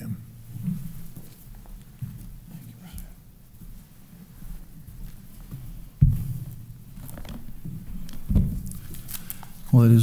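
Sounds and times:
footsteps on wooden platform: 3.6 - 8.7.

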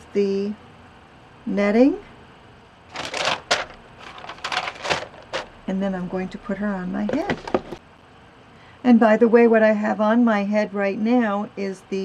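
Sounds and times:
netting crackling rustle: 2.9 - 5.5.

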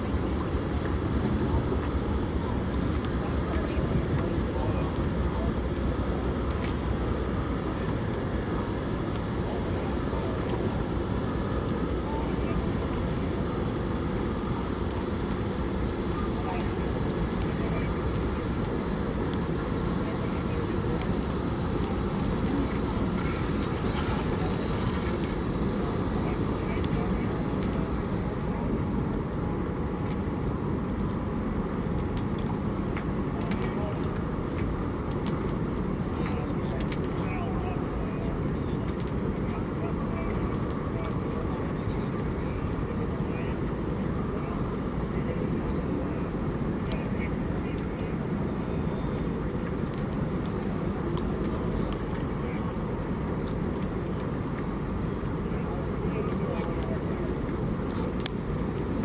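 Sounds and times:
boat engine idling: 0.0 - 59.0.

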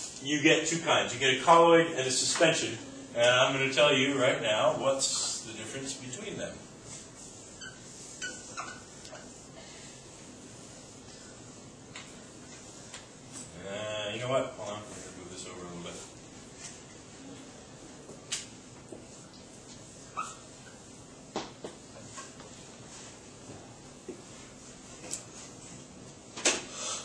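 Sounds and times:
marker squeaking on whiteboard: 6.9 - 9.5, 19.7 - 21.2, 21.9 - 22.6.

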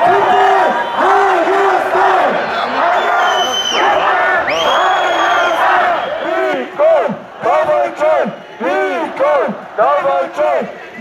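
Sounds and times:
crowd chanting in unison: 0.0 - 11.0
crowd shouting and cheering: 0.0 - 11.0
shrill whistle: 2.9 - 6.5.

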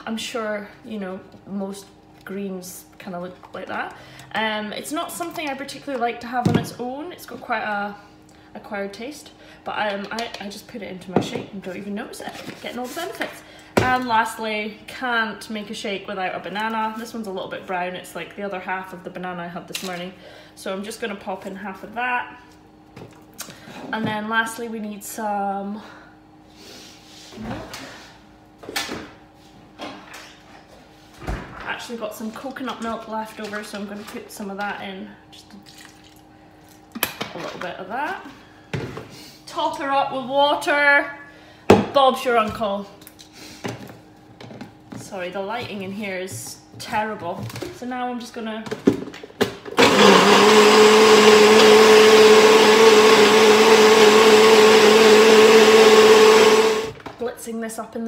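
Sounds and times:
blender running: 49.7 - 57.0.

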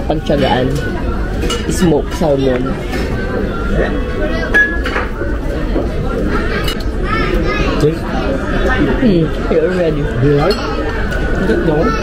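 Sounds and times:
background chatter: 0.0 - 12.0
dishes and cutlery clinking: 0.3 - 6.9, 10.4 - 11.7.

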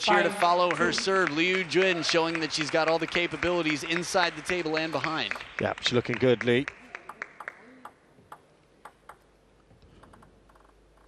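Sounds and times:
table tennis ball bouncing: 6.9 - 9.3, 10.0 - 11.0.

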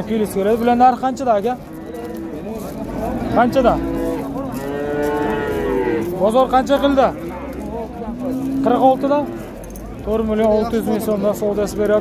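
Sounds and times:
calf mooing: 1.6 - 6.1.

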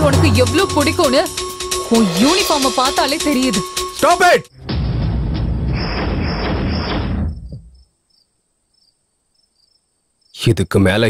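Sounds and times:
loud dramatic film sound: 0.0 - 7.4
crickets chirping: 7.3 - 10.7.

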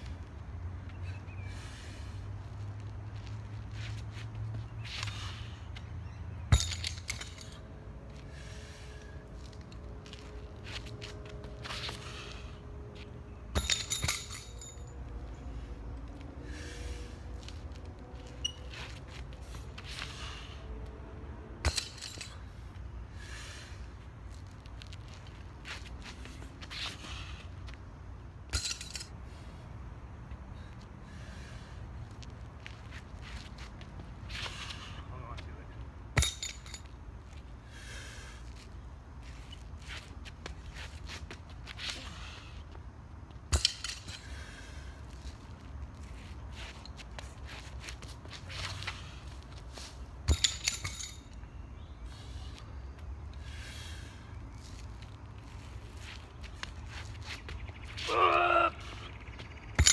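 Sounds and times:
steady low rumble: 0.0 - 50.6
metal weight clinking: 6.5 - 7.6, 13.5 - 15.0, 21.6 - 22.5, 28.5 - 29.2, 36.2 - 36.9, 50.3 - 51.4.

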